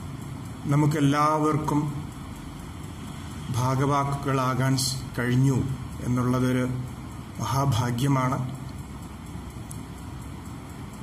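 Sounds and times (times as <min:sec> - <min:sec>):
faint tick: 0:08.3 - 0:11.0.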